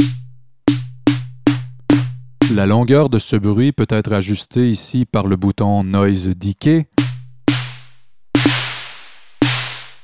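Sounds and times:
synth snare drum hits: 0.0s - 2.6s, 7.0s - 10.0s.

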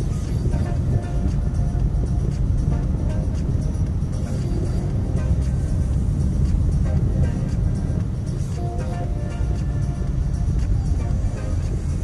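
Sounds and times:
car radio music: 0.0s - 12.0s
car road and engine rumble: 0.0s - 12.0s.

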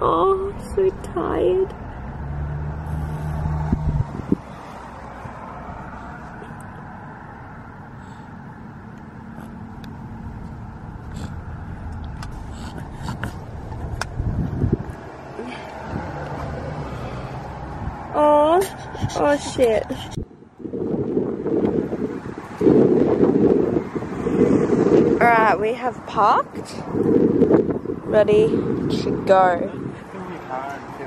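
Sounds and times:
car interior hum: 0.0s - 31.0s.

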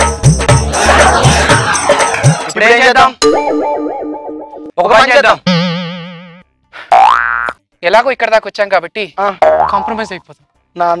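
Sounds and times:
cartoon twanging wobbling tone: 5.4s - 6.4s, 9.4s - 10.0s.

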